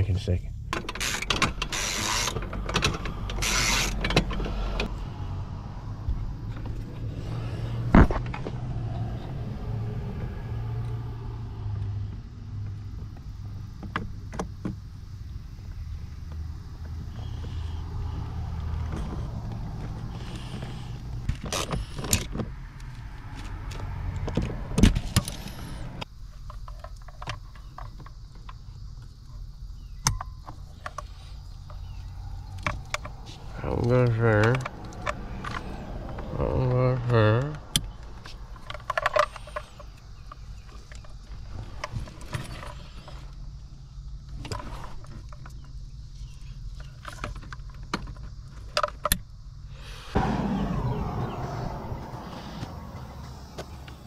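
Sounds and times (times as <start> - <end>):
steady low hum: 50.0 - 54.0.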